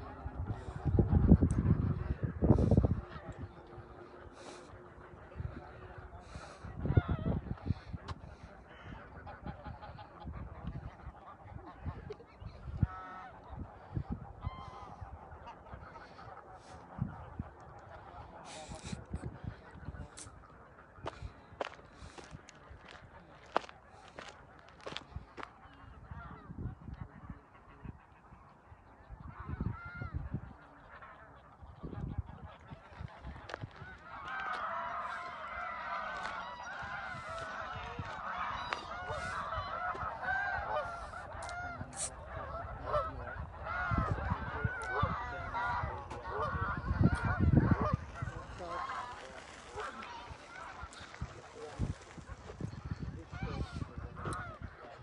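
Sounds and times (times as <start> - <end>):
geese honking: 0.0 - 55.0
footsteps on gravel: 21.0 - 25.5, 48.0 - 52.8.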